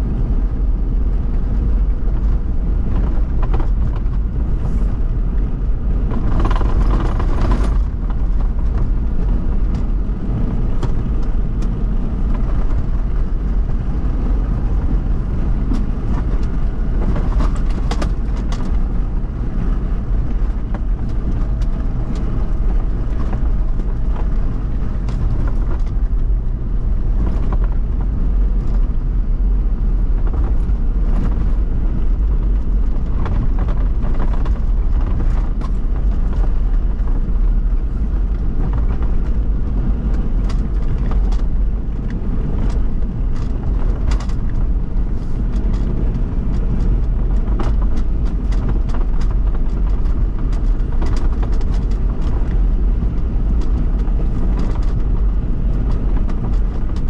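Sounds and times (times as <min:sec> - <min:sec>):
off-road vehicle engine and tyres rumbling: 0:00.0 - 0:57.0
knocks and rattles: 0:05.8 - 0:13.5.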